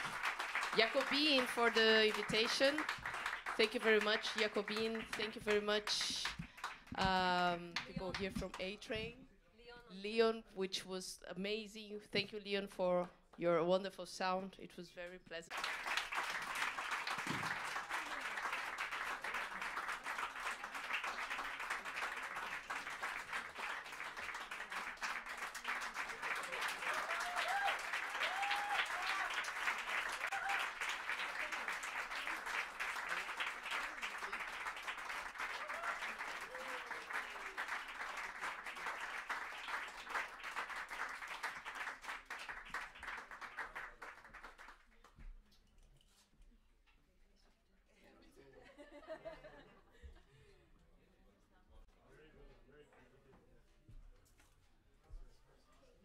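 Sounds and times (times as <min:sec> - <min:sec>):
audience applauding: 0:00.0 - 0:06.9, 0:15.5 - 0:45.0
audience cheering: 0:25.9 - 0:38.1.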